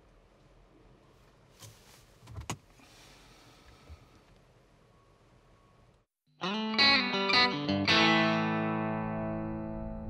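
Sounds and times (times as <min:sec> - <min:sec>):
faint rustle: 0:01.0 - 0:04.4.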